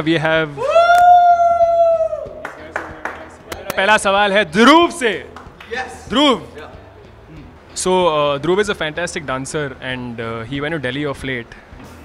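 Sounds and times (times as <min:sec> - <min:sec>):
person cheering woo: 0:00.6 - 0:02.6.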